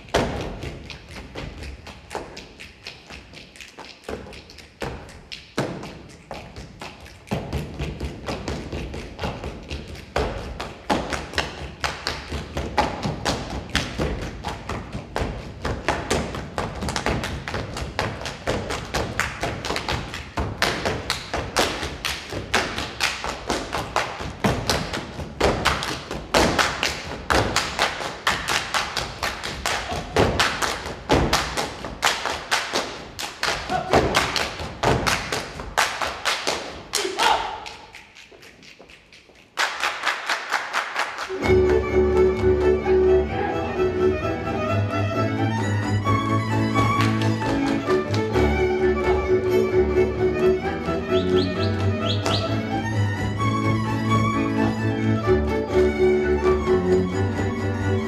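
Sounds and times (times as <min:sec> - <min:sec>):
feet stamping and tapping: 0:00.0 - 0:03.4, 0:04.0 - 0:36.8.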